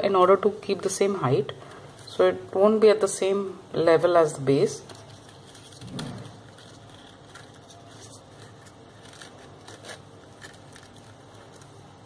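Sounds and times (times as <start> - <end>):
crepe paper crackling: 4.8 - 12.0.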